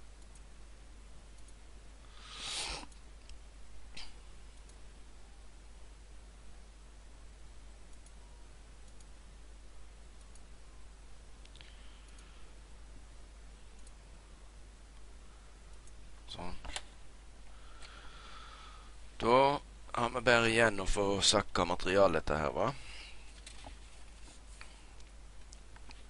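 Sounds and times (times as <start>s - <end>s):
low hum and hiss: 0.0s - 26.0s
computer mouse clicks: 0.2s - 0.5s, 1.4s - 1.6s, 7.9s - 8.2s, 8.8s - 9.1s, 10.2s - 10.5s, 11.4s - 12.3s, 13.7s - 14.0s.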